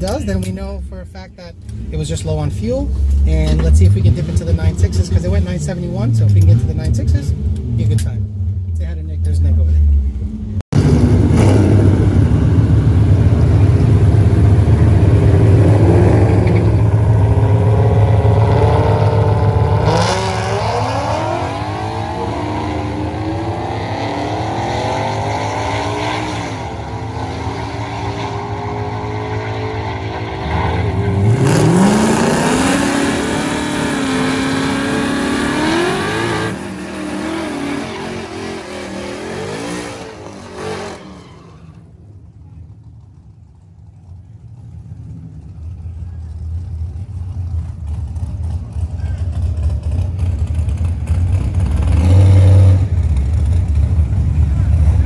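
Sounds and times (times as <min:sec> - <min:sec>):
drag car engine revving: 0:01.5 - 0:55.0.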